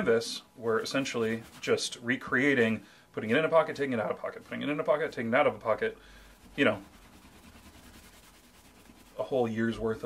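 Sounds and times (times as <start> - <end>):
cloth rubbing on leather: 0.7 - 2.0, 4.1 - 10.0.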